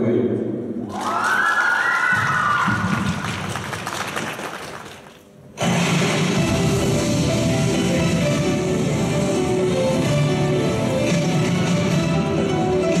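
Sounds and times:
audience clapping: 0:00.8 - 0:05.4
routine music: 0:06.0 - 0:13.0.

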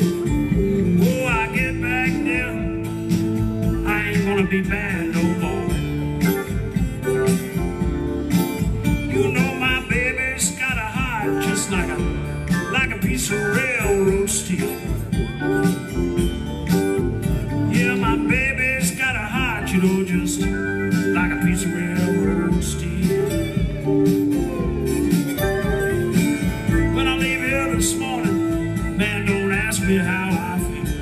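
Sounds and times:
acoustic slide guitar: 0:00.0 - 0:31.0.

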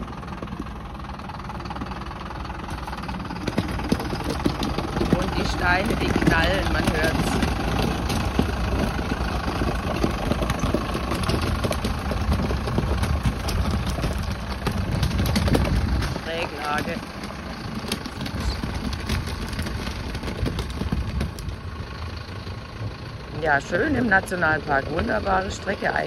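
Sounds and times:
stones cracking under tyres: 0:00.0 - 0:23.1
diesel truck engine: 0:00.0 - 0:26.0.

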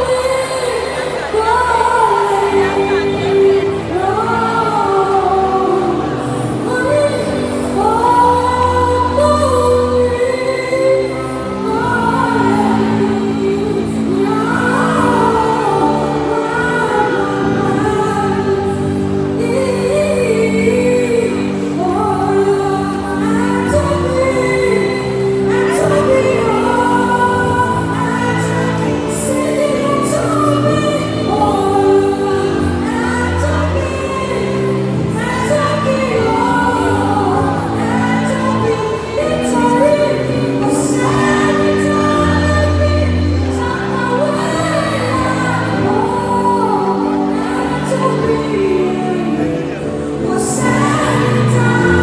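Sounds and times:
choir-like voices: 0:00.0 - 0:52.0
person singing gospel: 0:00.0 - 0:52.0
sustained backing music: 0:00.0 - 0:52.0.

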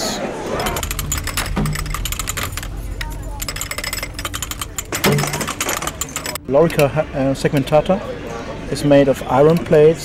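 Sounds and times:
metal armour jangling and clinking: 0:00.5 - 0:06.9.

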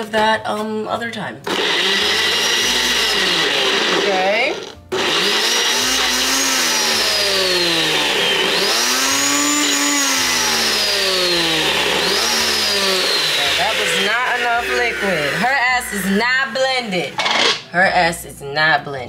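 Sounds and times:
blender motor running: 0:01.5 - 0:16.2.

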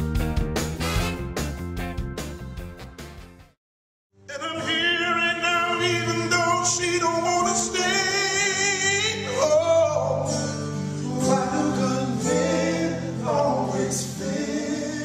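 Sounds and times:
gospel singing in harmony: 0:04.3 - 0:15.0.

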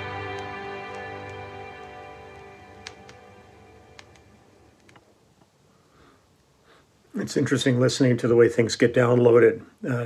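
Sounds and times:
record clicks and pops: 0:00.0 - 0:05.5
faint hiss: 0:00.0 - 0:10.0.

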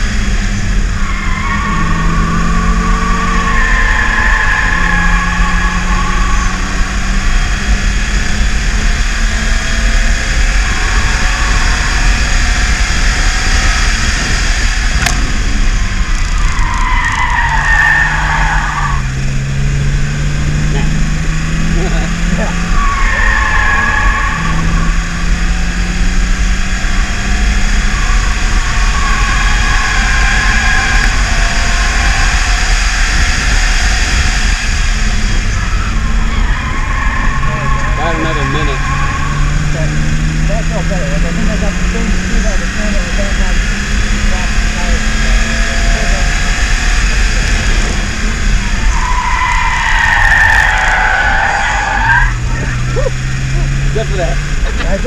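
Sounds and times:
car engine revving: 0:00.0 - 0:55.0
road and wind noise: 0:00.0 - 0:55.0
tyre squeals: 0:00.9 - 0:07.1, 0:22.3 - 0:25.0, 0:45.7 - 0:53.8.

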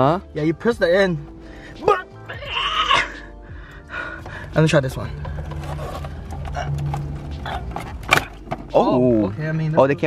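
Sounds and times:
plastic creaks and knocks: 0:05.1 - 0:08.8.

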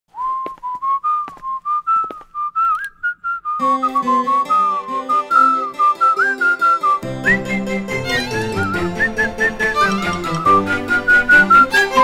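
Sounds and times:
man whistling a tune: 0:00.1 - 0:11.8.

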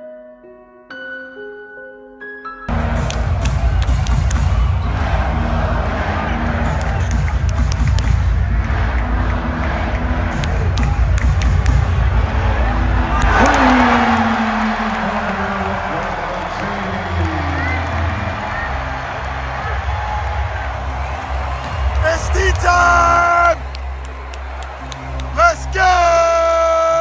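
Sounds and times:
loud music over loudspeakers: 0:02.7 - 0:15.9, 0:16.5 - 0:27.0
arena crowd noise: 0:02.7 - 0:27.0
crowd cheering: 0:02.7 - 0:27.0.

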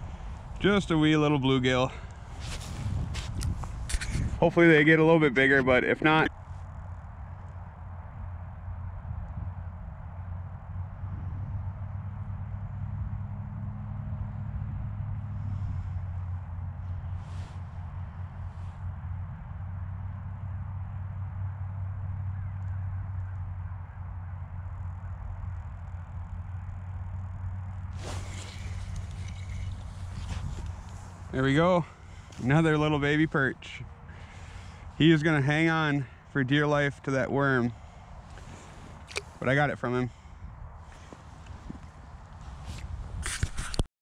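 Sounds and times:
steady low hum: 0:00.0 - 0:43.9
rustling and handling noise: 0:02.2 - 0:04.5, 0:28.0 - 0:31.4.

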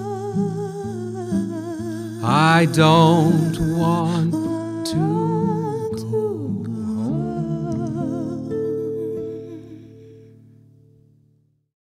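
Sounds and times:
woman singing with vibrato: 0:00.0 - 0:10.1.

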